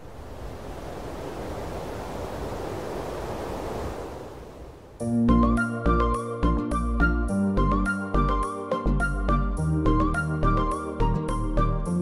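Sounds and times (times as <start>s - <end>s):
steady rushing noise: 0.0s - 5.0s.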